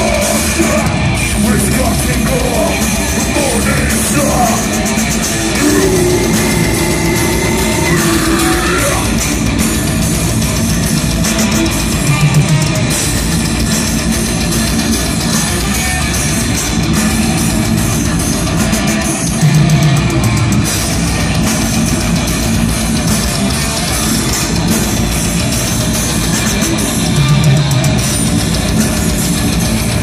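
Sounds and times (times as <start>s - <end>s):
heavy metal band playing: 0.0s - 30.0s.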